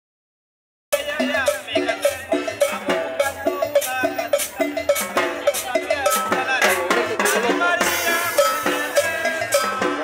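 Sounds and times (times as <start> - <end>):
hand percussion beat: 0.9 - 10.0
live latin dance band: 0.9 - 10.0.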